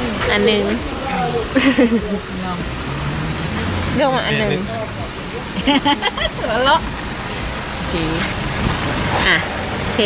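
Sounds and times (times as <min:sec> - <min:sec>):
outdoor noise hiss: 0:00.0 - 0:10.0.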